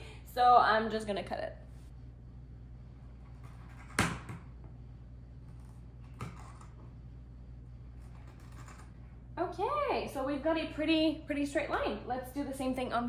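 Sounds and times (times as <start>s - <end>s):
steady low hum: 0.0s - 13.0s.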